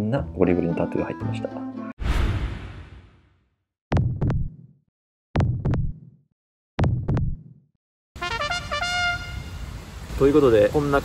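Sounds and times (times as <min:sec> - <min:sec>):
heartbeat thumps: 0:03.9 - 0:04.6, 0:05.4 - 0:06.0, 0:06.8 - 0:07.5.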